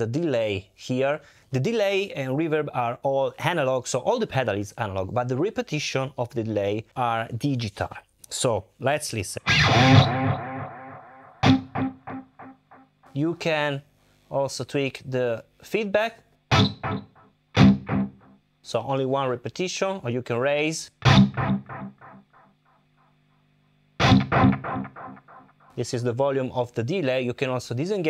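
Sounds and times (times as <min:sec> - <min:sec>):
guitar note with delay echoes: 0:09.5 - 0:12.9, 0:16.5 - 0:18.4, 0:21.0 - 0:22.5, 0:24.0 - 0:25.6
electric guitar chord ringing: 0:09.5 - 0:13.0, 0:16.5 - 0:18.4, 0:21.0 - 0:22.5, 0:24.0 - 0:25.6.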